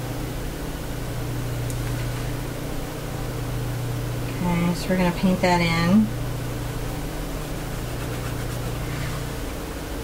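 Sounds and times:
low electrical hum: 0.0 - 10.0
room hiss: 0.0 - 10.0.

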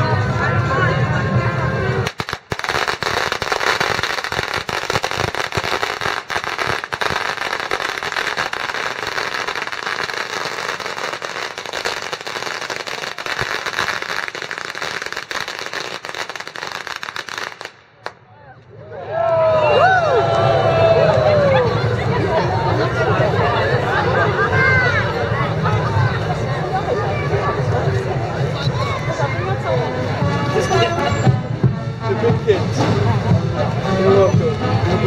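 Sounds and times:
firecrackers popping rapidly: 2.0 - 18.2.

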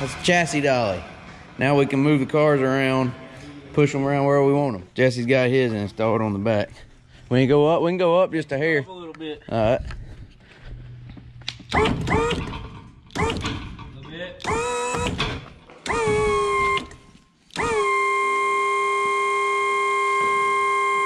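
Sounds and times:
electric lift motor winding: 11.7 - 13.5, 14.4 - 21.0.

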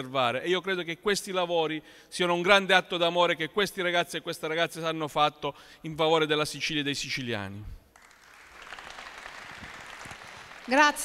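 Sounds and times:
audience applause: 8.0 - 11.0.

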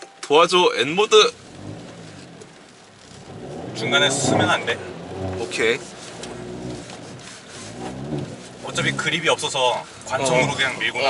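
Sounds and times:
car engine at low revs: 0.5 - 11.0.

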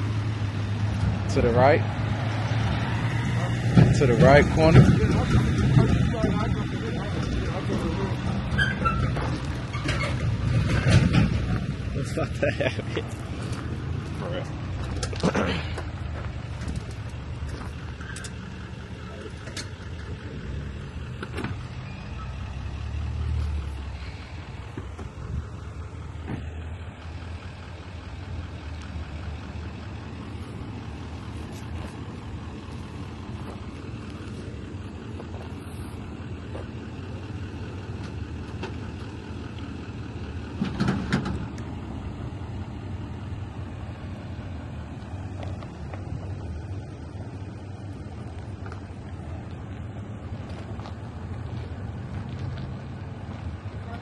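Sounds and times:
diesel truck engine running: 0.0 - 54.0.

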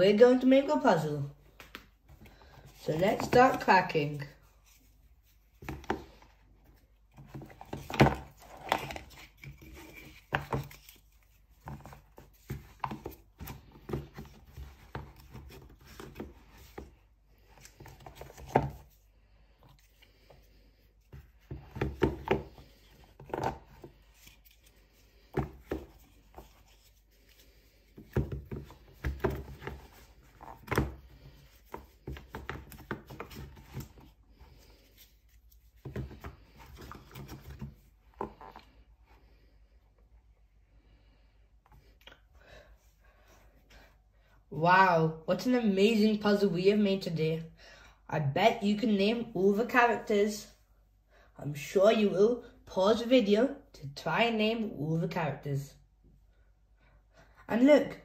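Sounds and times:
cardboard books tapping and scraping: 1.5 - 19.0, 21.0 - 38.8.

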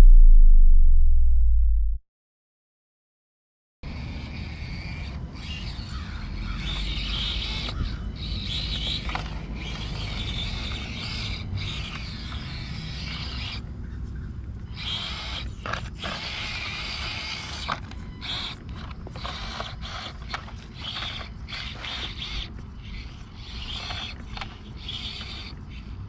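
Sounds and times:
steady low rumble: 0.0 - 2.0
small electric motor whining: 3.9 - 26.0.

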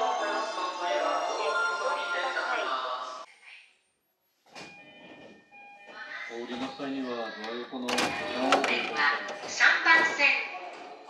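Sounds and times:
background music: 0.0 - 3.3
public address announcement: 0.0 - 3.3, 5.9 - 11.0.

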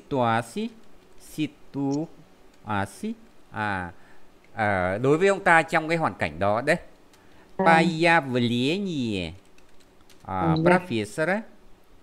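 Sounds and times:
person holding hesitation vowel: 7.6 - 8.0
computer keyboard typing: 9.3 - 10.4.

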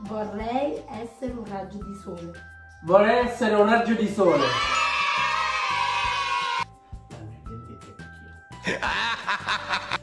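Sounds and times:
background music: 0.0 - 10.0
person laughing: 8.6 - 10.0.

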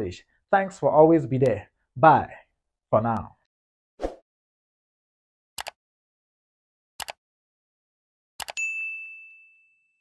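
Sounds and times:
bright bell ding: 8.6 - 10.0.

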